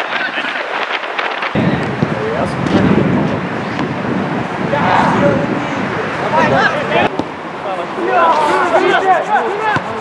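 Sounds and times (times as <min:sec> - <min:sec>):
wind rumbling on microphone: 0:00.0 - 0:07.6
players shouting: 0:04.3 - 0:10.0.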